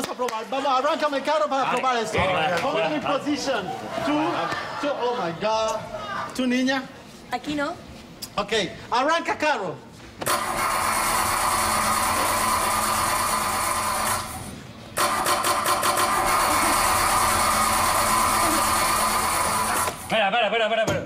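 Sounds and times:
car engine starting: 10.3 - 14.4, 15.0 - 20.1.

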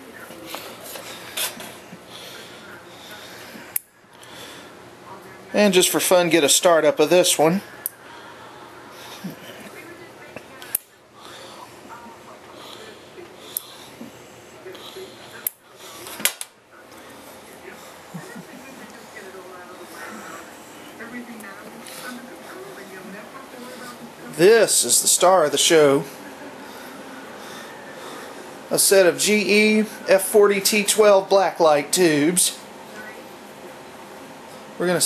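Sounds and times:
low room hum: 0.0 - 35.0
steady background noise: 0.0 - 35.0.

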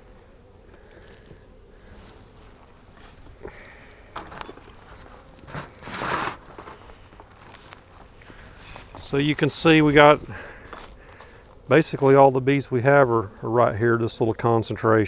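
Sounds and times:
rustling scrape: 2.0 - 9.0
wood knocks and scrapes: 5.4 - 7.0.

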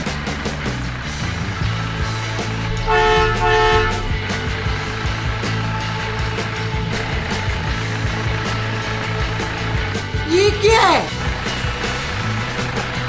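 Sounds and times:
background music: 0.0 - 13.0
low drone: 1.0 - 9.8
horn-like toot: 2.7 - 4.4.

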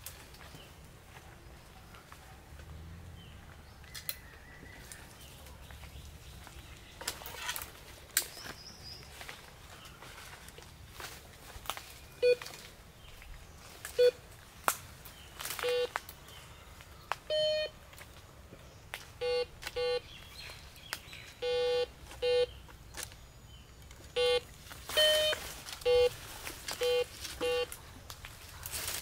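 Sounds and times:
metal detector beeps: 12.2 - 12.5, 14.0 - 14.2, 15.6 - 16.0, 17.3 - 17.8, 19.2 - 20.0, 21.4 - 22.6, 24.1 - 26.2, 26.8 - 27.7.

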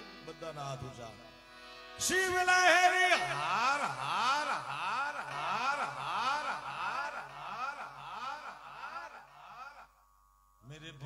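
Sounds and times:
man singing wordless melody: 2.0 - 9.8.

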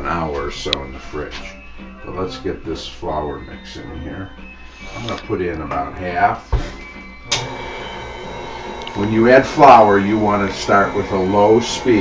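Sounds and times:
stand mixer motor running: 7.3 - 12.0.

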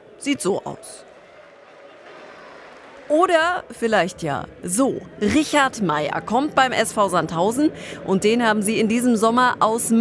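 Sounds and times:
faint stadium crowd noise: 0.0 - 10.0.

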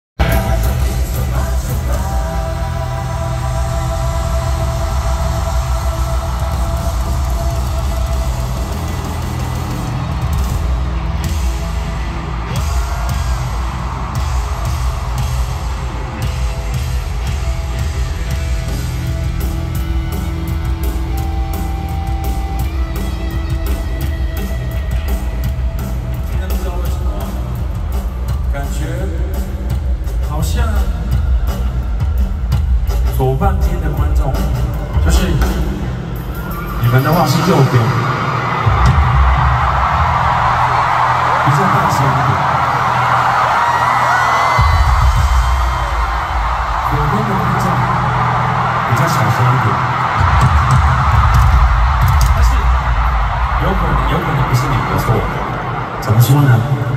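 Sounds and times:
bass-heavy concert music: 0.1 - 56.9
crowd noise: 0.1 - 56.9.

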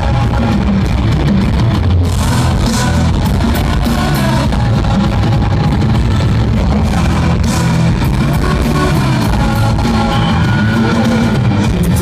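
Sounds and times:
distorted electric guitars: 0.0 - 12.0
drum kit beat: 0.0 - 12.0.

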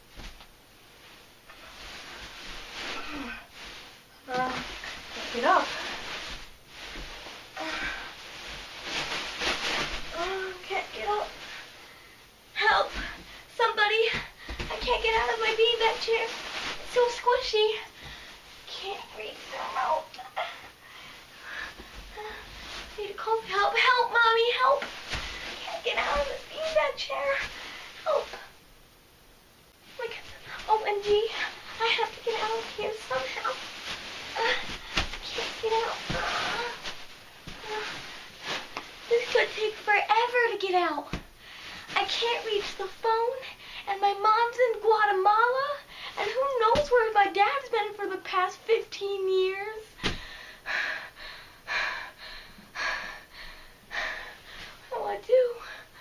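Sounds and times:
beanbag chair rustling: 0.0 - 11.8, 12.6 - 28.5, 29.8 - 43.4.

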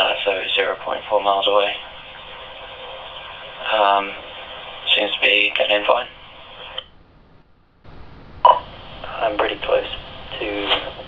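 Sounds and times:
man's voice over radio: 0.0 - 1.9, 3.6 - 6.2, 9.0 - 11.0
radio static rush: 0.0 - 11.0.

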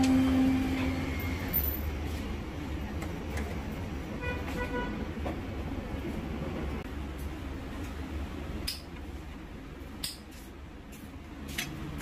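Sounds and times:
vehicle horn beeps: 0.0 - 1.6, 4.2 - 5.0.

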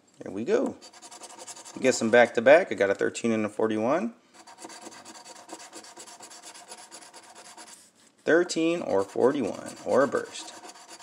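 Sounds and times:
coin scraping scratch-off ticket: 0.8 - 2.0, 8.9 - 11.0.

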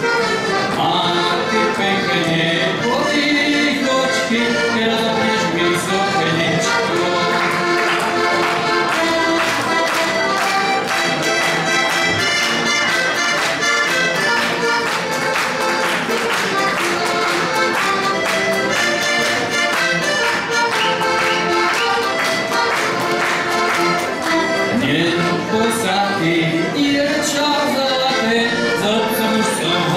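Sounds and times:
button accordion folk tune: 0.0 - 29.9.

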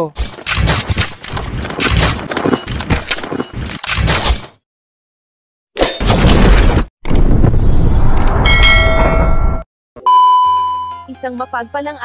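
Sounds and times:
ringing chime-like tones: 8.5 - 11.1.

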